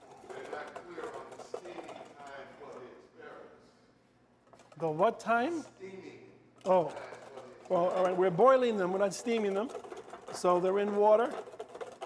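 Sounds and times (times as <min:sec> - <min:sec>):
whisk ticking and scraping in metal pan: 0:00.0 - 0:02.4, 0:06.6 - 0:12.0.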